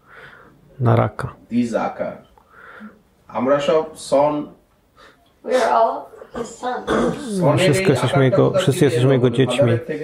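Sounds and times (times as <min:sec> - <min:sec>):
man talking: 0:07.2 - 0:10.0.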